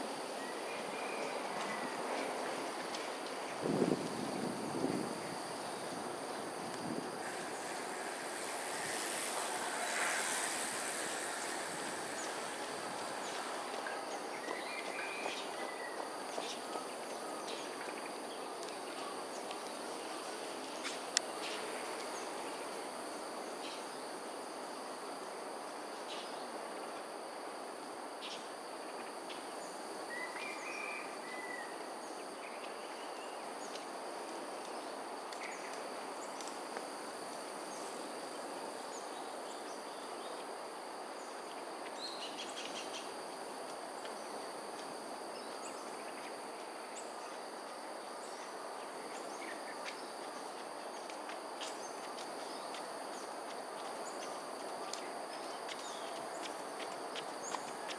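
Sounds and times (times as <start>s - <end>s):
background hiss: 0.0s - 57.9s
insects droning: 0.0s - 57.9s.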